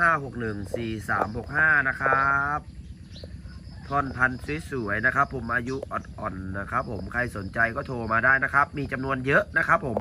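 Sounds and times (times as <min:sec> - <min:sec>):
man speaking: 0:00.0 - 0:02.7, 0:03.8 - 0:10.0
crickets chirring: 0:00.0 - 0:10.0.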